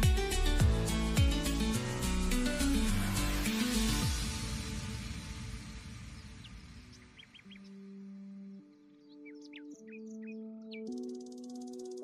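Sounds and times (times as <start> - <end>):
soft background music: 0.0 - 12.0
high bird chirps: 6.1 - 12.0.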